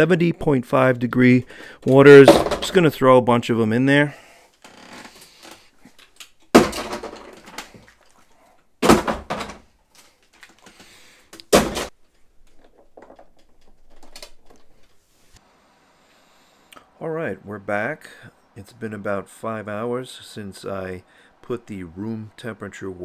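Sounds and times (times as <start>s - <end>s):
plastic bottles thudding: 2.2s - 2.8s, 6.5s - 8.1s, 8.8s - 9.7s, 10.4s - 14.5s.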